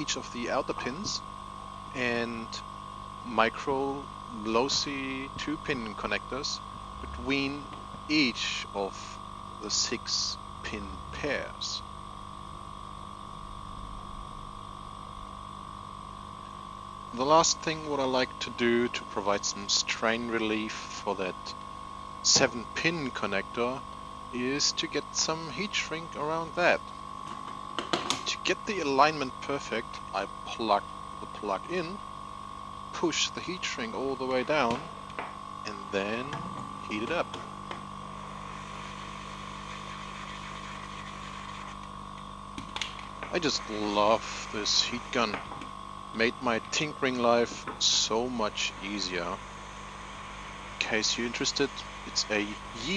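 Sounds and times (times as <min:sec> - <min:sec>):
hot-air gun fan whirring: 0:00.0 - 0:13.4, 0:14.7 - 0:52.9
electrical hum with whining tone: 0:00.0 - 0:52.9.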